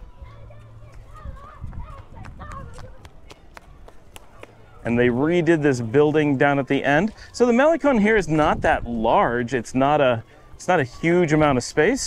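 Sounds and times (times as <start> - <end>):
footsteps on pavement: 0.0 - 5.6
faint distant voices: 0.0 - 12.0
wind gusting on microphone: 0.9 - 3.9, 8.0 - 9.8.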